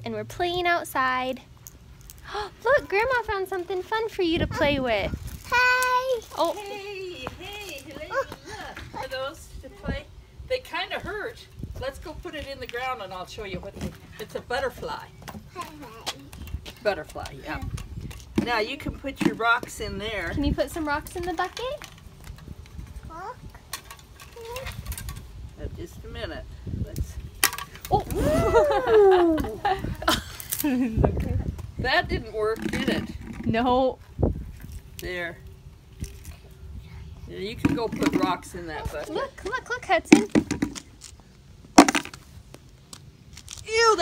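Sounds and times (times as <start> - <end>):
rock clacking into pail: 40.1 - 40.9, 41.8 - 42.2.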